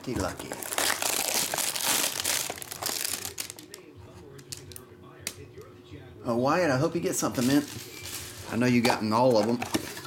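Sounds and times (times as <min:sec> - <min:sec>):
plastic shrink-wrap crinkling and tearing: 0:00.3 - 0:03.8.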